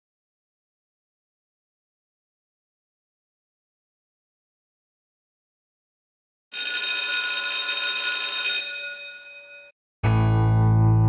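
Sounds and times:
alarm-like ringing: 6.5 - 9.7.

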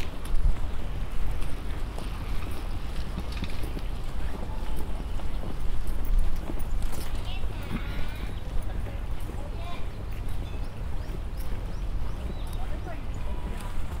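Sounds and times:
wind rumble on microphone: 0.0 - 14.0
distant indistinct voices: 4.0 - 14.0.

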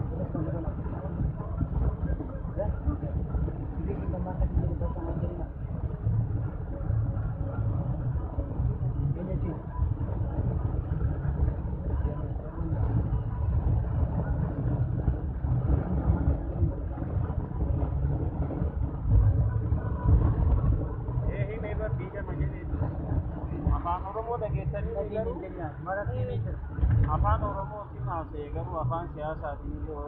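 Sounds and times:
vehicle engine and road rumble: 0.0 - 30.0.

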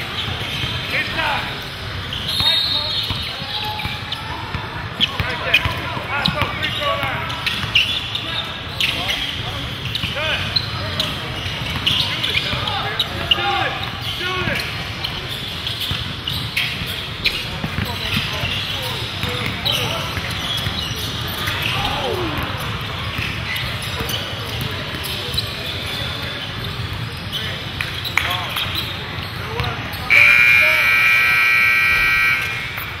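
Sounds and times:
players' voices: 0.0 - 33.0
sneakers squeaking on hardwood: 0.0 - 33.0
basketball bouncing: 3.1 - 6.4, 17.6 - 18.3
scoreboard buzzer: 30.1 - 33.0.

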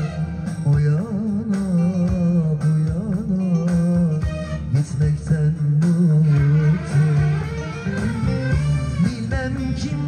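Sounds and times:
man singing into a microphone: 0.0 - 8.0, 8.8 - 10.0
guitar: 0.0 - 10.0
steady bass line: 0.0 - 10.0.

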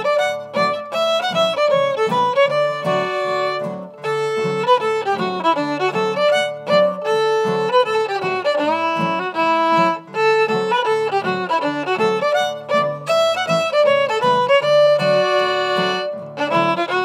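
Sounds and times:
fiddle playing fast melody: 0.0 - 17.0
strummed acoustic guitars: 0.0 - 17.0.

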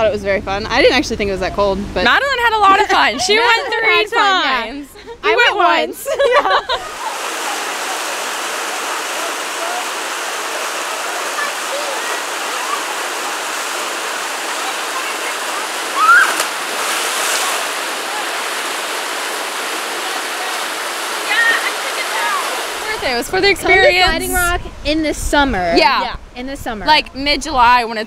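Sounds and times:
splashing into water: 6.9 - 22.8
water rushing down rock: 6.9 - 23.2.

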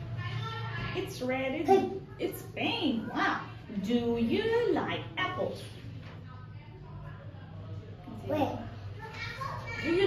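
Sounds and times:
child's voice: 8.3 - 10.0.

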